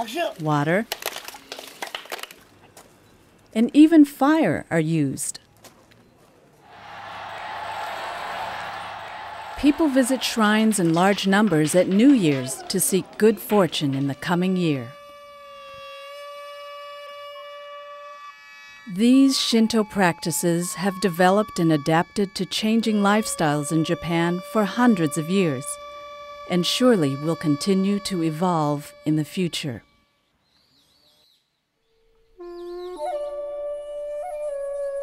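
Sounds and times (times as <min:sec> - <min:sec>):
held flute-like note: 0:06.8 - 0:30.2, 0:32.2 - 0:35.0
mouth organ and flutes held chord: 0:19.0 - 0:29.9.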